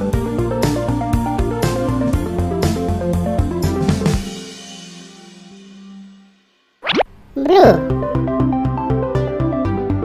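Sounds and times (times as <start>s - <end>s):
rising whistle sound effect: 6.8s - 7.1s
high-pitched voice: 7.4s - 8.0s.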